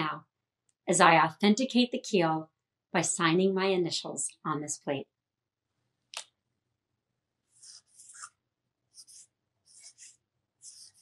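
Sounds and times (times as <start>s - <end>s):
marker pen scratching on metal: 7.5s - 11.0s.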